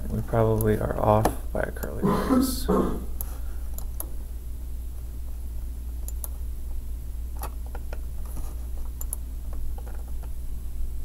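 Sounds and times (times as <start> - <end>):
steady low hum: 0.0 - 11.0
computer mouse clicks: 3.2 - 4.1, 6.0 - 6.4, 7.4 - 10.3.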